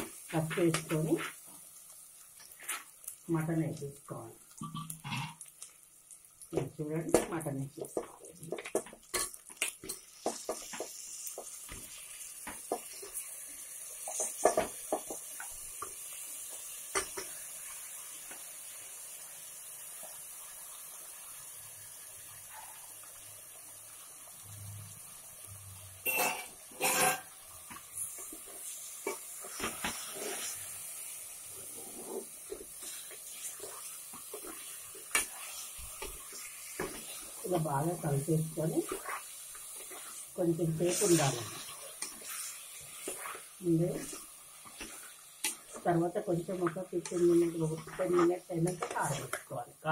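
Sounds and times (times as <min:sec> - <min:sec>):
steady frying hiss: 0:00.0 - 0:49.9
spatula scraping a pressure cooker: 0:26.1 - 0:27.3, 0:28.0 - 0:30.6, 0:31.6 - 0:45.9.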